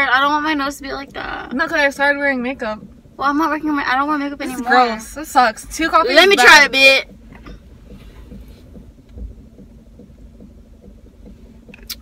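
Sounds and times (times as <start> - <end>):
car cabin hum and rumble: 0.0 - 12.0
soft low thump: 0.0 - 12.0.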